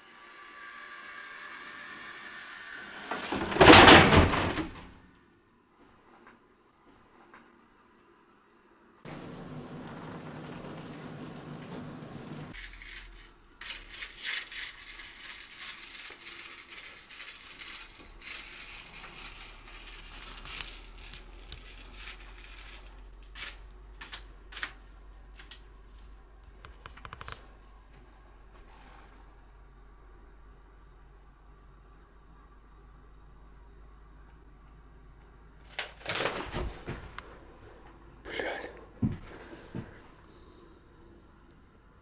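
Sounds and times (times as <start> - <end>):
low steady hum: 7.2 - 42.0.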